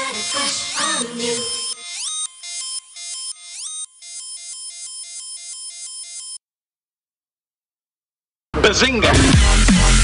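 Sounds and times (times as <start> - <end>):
bright synthesizer line: 0.0 - 6.4.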